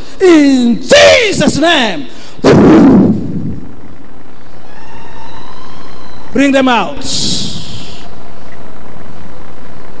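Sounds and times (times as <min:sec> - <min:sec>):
faint held whine: 0:00.0 - 0:10.0
room and crowd noise: 0:00.0 - 0:10.0
loud shout in reverberant hall: 0:00.2 - 0:02.4, 0:04.3 - 0:08.8.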